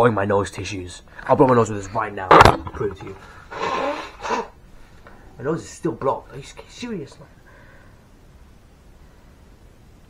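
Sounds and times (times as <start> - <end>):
man blowing nose into tissue: 3.5 - 4.6.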